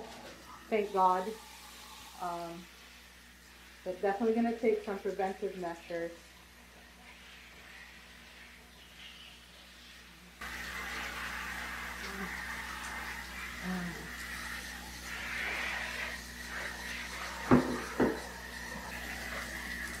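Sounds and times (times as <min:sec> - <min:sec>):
shower head spraying water: 0:00.0 - 0:20.0.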